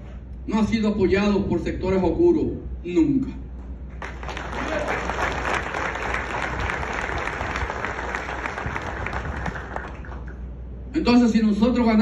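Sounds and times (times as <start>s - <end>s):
audience applauding: 4.0s - 10.4s.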